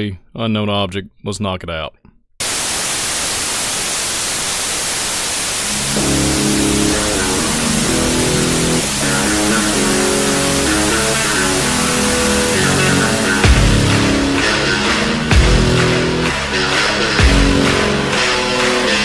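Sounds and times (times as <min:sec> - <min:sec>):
television static hiss: 0:02.4 - 0:13.5
music with low line and chords: 0:05.8 - 0:19.0.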